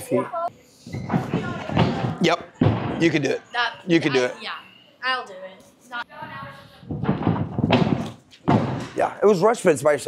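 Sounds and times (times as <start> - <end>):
thuds on carpeted tumbling strip: 6.9 - 8.9.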